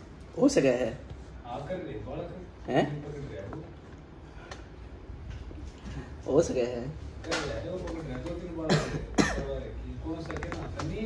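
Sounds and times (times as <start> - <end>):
man coughing: 8.6 - 9.7.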